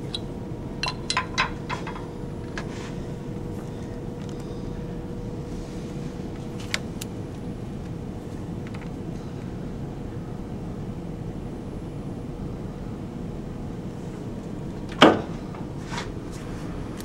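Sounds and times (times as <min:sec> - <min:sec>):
machine shop hum: 0:00.0 - 0:17.0.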